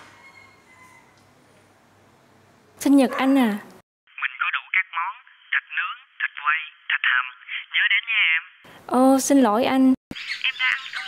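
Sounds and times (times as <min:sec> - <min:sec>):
woman speaking: 0:02.8 - 0:03.8, 0:08.9 - 0:10.0
voice talking over telephone: 0:04.1 - 0:09.8, 0:10.4 - 0:11.0.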